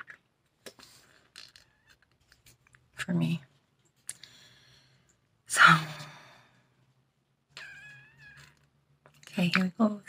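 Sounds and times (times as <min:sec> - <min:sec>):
cat meowing: 0:07.6 - 0:08.6.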